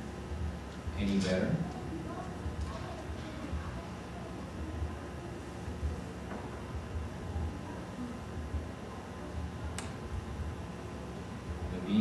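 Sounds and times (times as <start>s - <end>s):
sharp click: 9.8s - 10.0s.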